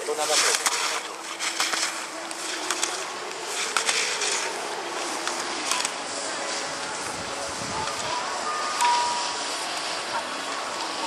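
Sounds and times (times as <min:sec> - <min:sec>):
steady outdoor hiss: 0:00.0 - 0:11.0.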